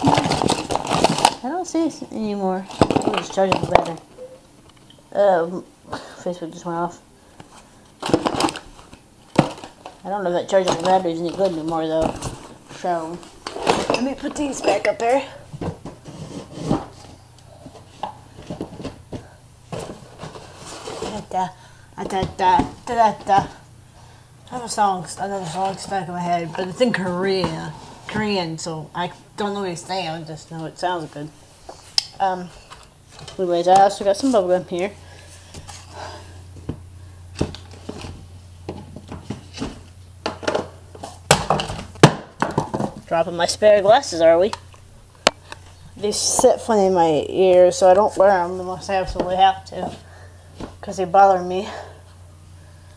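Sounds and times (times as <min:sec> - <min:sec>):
small objects knocking and scraping: 0:00.0 - 0:01.4
low steady hum: 0:00.0 - 0:52.9.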